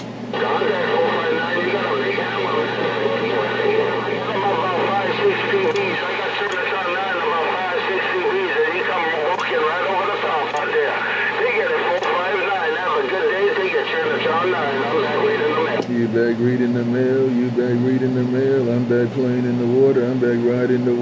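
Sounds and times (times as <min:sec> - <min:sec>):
steady low hum: 0:00.0 - 0:21.0
garbled voices over radio speaker: 0:00.3 - 0:21.0.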